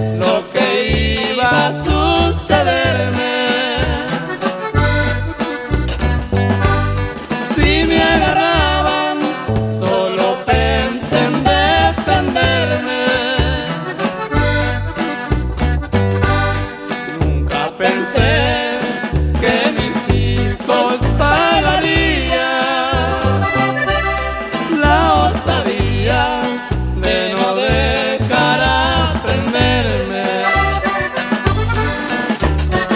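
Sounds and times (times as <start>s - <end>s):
accordion-led melody: 0.0s - 32.9s
bass line: 0.0s - 32.9s
plucked strings: 1.1s - 18.6s, 28.0s - 32.9s.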